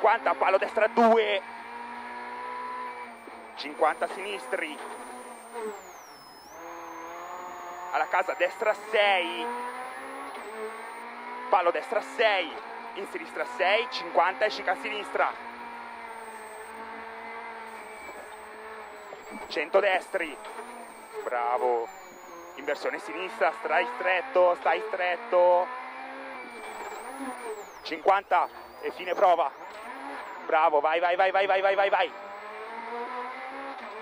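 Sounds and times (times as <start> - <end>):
car engine from inside cabin: 0.0 - 34.0.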